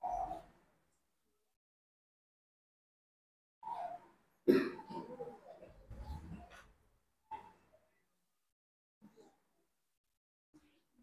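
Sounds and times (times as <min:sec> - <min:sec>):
sharp cough: 0:04.5 - 0:05.1.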